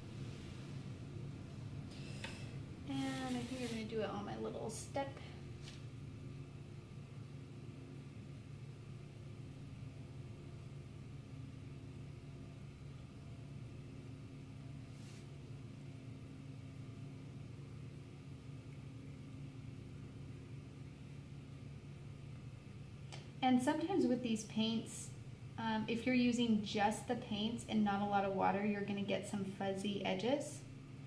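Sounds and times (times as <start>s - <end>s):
low hum: 0.0s - 31.0s
faint hiss: 1.9s - 4.2s.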